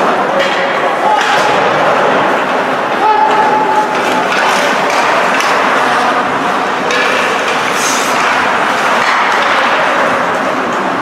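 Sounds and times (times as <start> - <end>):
ice rink arena noise: 0.0 - 11.0
skates or sticks on ice: 2.2 - 11.0.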